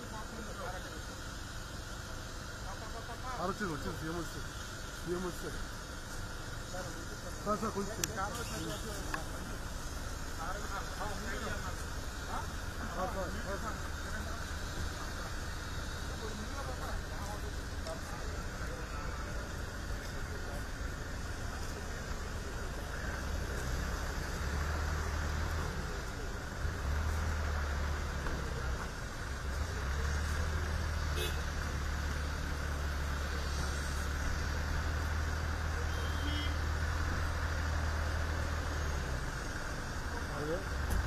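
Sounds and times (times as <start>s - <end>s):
car engines rumbling: 0.0s - 41.0s.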